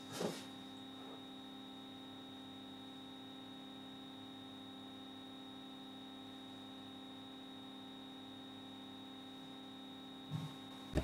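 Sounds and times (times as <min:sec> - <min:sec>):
electrical hum: 0:00.0 - 0:11.0
thin high whine: 0:00.0 - 0:11.0.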